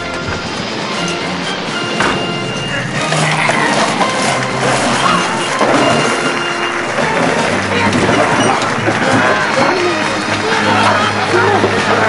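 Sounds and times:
dense steady din: 0.0s - 12.0s
music playing: 0.0s - 12.0s.

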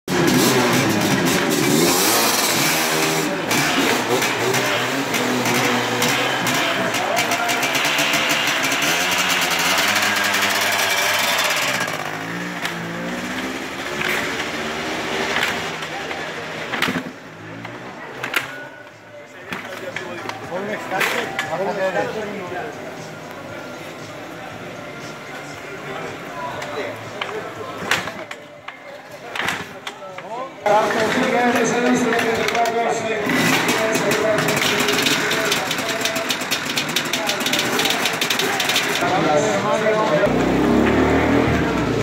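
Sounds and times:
motorcycle engines revving: 0.1s - 18.5s, 30.6s - 42.0s.

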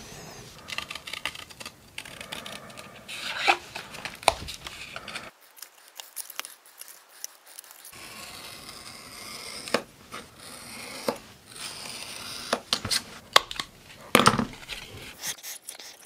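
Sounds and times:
steady hiss: 0.0s - 0.7s
scissors snipping paperboard: 0.6s - 15.3s.

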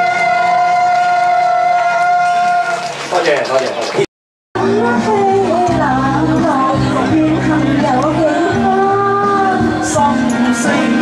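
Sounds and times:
backing music: 4.6s - 11.0s.

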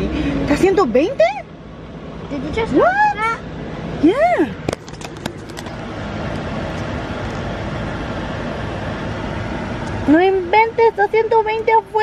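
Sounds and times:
vehicle cabin engine noise: 0.0s - 12.0s.

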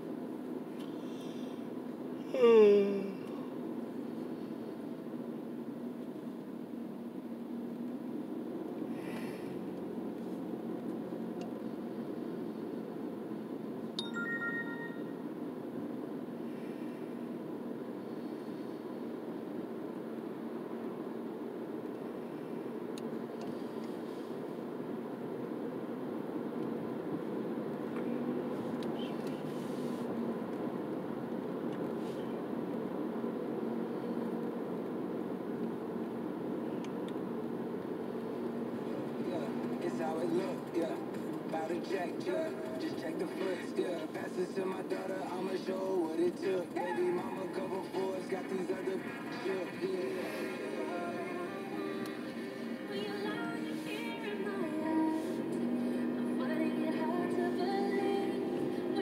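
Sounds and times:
car cabin road and engine noise: 0.0s - 59.0s
high beep: 14.0s - 15.2s.

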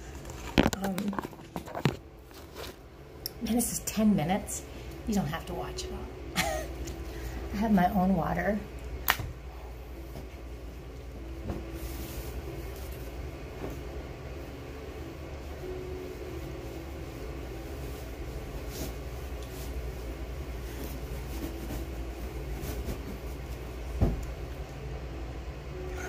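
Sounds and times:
bed linens rustling: 0.0s - 4.5s, 9.3s - 26.0s
fan whirring: 0.0s - 26.0s.

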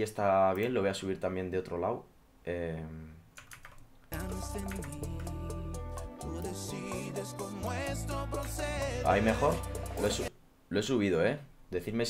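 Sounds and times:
computer keyboard clicks: 3.4s - 5.3s
bachata song: 4.1s - 10.3s.

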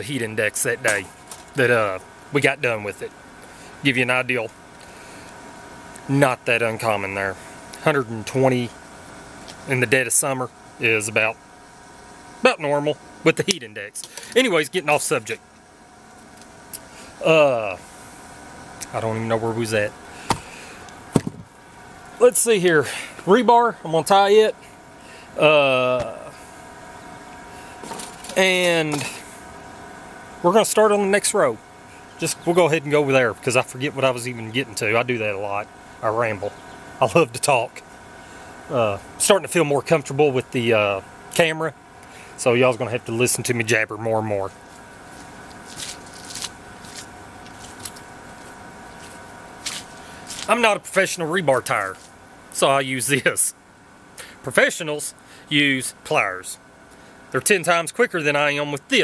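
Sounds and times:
faint steady hum: 0.0s - 59.0s
sharp knocks: 21.1s - 21.5s
footsteps: 44.6s - 50.5s
tool handling clicks and scuffs: 44.7s - 50.5s.

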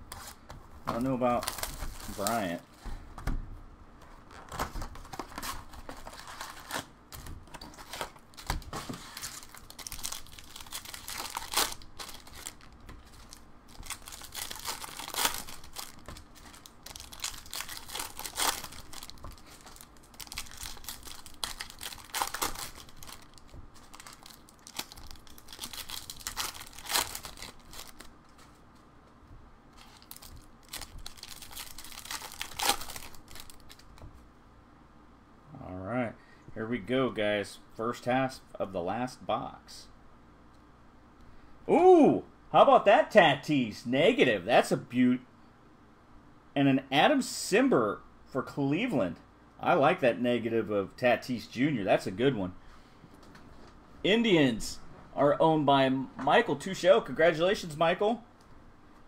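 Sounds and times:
plastic wrappers tearing and crinkling: 1.3s - 2.5s, 4.4s - 28.1s, 29.8s - 34.0s.

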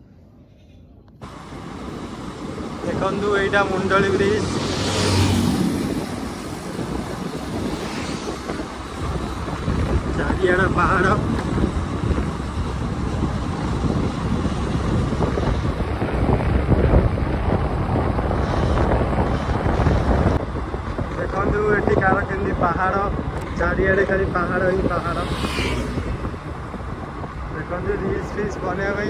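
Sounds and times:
wind buffeting microphone: 1.2s - 29.0s.

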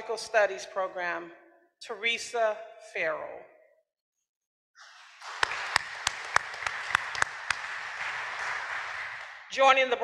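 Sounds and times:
audience applause: 4.8s - 9.5s
sharp single claps: 5.2s - 9.5s.

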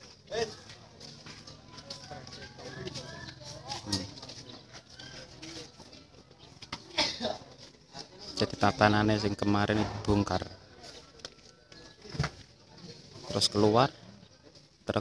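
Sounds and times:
men talking and calling out: 0.0s - 15.0s.

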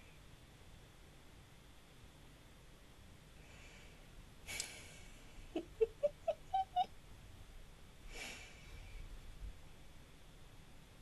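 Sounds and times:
person making high-pitched sounds: 5.9s - 6.9s.

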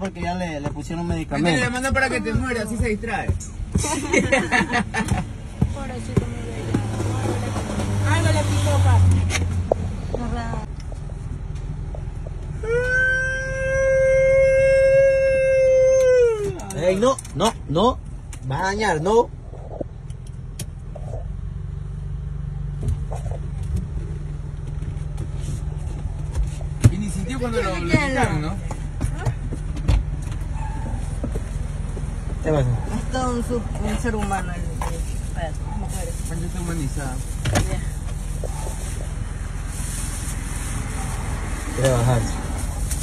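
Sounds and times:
low rumble of car: 0.0s - 43.0s
dog howling: 12.6s - 16.6s.

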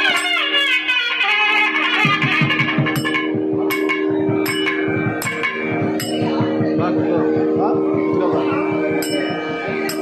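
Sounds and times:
ringing metallic strikes: 0.0s - 0.8s, 1.7s - 10.0s
steady drone: 0.0s - 10.0s
low drum strokes: 2.0s - 10.0s.

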